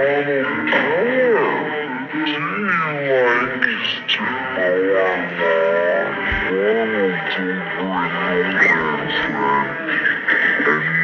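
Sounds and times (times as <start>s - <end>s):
person singing: 0.0s - 9.9s
guitar pop music: 0.0s - 11.0s.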